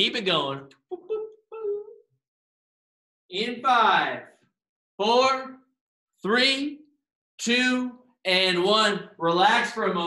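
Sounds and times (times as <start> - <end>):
short high vocal sounds: 0.9 - 2.0.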